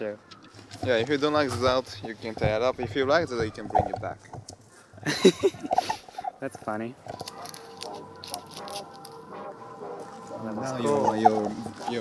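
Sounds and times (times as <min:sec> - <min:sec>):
paper crinkling: 0:07.0 - 0:12.0.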